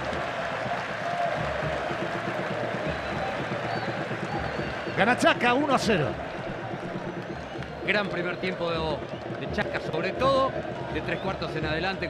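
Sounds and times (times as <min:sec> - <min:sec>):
stadium crowd applauding and cheering: 0:00.0 - 0:12.0.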